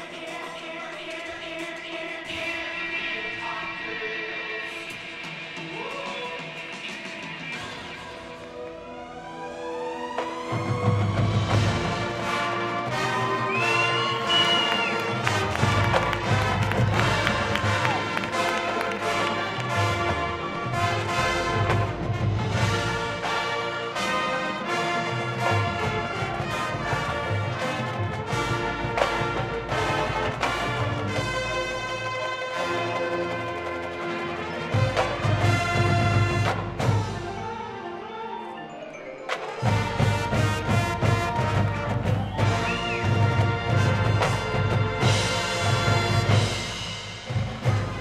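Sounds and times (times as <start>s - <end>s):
marching band playing: 5.0s - 48.0s.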